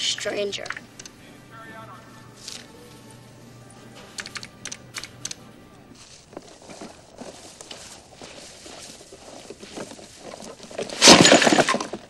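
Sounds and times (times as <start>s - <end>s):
groceries crashing onto ground: 9.5s - 12.0s.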